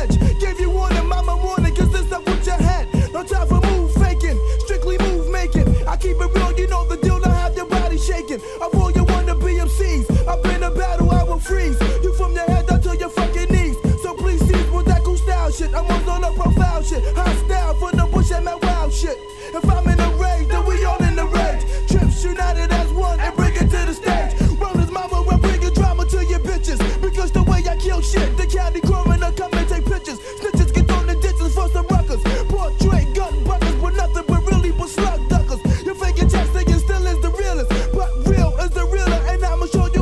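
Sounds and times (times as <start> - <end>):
rapping over a drum beat: 0.0 - 40.0.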